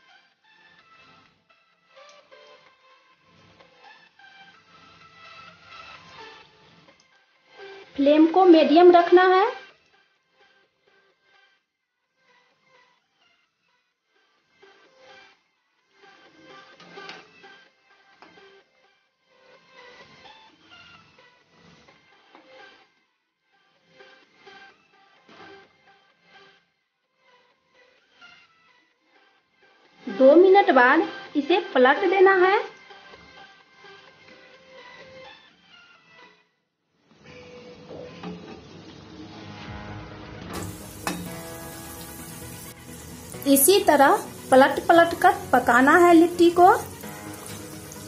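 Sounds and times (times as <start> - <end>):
background music with held tones: 0.0 - 48.0
soft instrumental music: 39.4 - 48.0
food sizzling in hot oil: 40.6 - 48.0.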